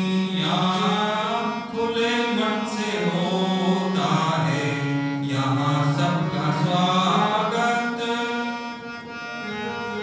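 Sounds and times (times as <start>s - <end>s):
harmonium notes: 0.0s - 10.0s.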